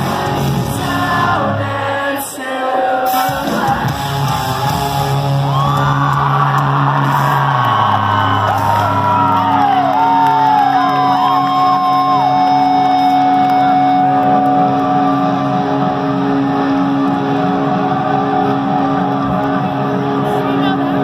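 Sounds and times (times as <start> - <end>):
live rock band playing: 0.0 - 1.6, 3.0 - 21.0
crowd shouting and whooping: 0.0 - 21.0.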